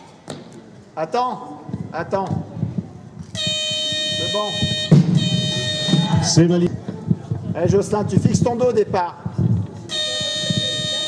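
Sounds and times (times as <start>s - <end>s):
electronic buzzer tone: 3.4s - 6.4s, 9.9s - 11.0s.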